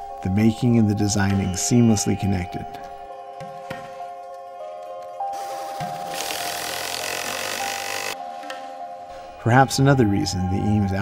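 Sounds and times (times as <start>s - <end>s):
power driver driving screw: 6.1s - 8.2s.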